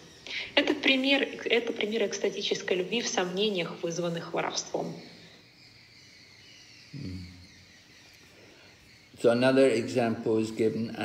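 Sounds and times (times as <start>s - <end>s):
high-pitched background chirr: 0.0s - 11.0s
man humming briefly: 7.0s - 7.2s.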